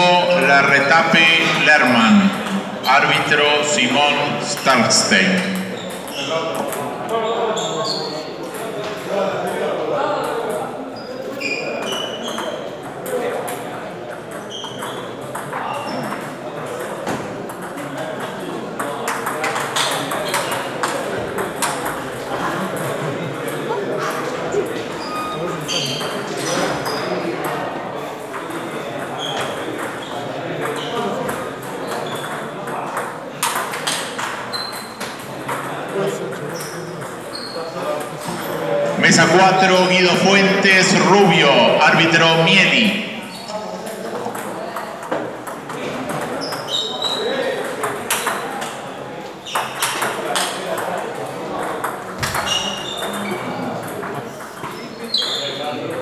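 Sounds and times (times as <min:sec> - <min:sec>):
murmur of voices: 0:00.0 - 0:56.0.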